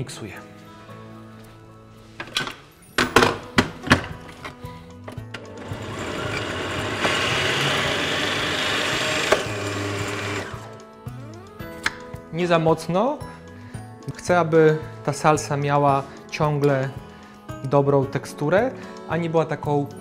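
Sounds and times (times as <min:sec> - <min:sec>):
food processor motor running: 0:05.5 - 0:10.7.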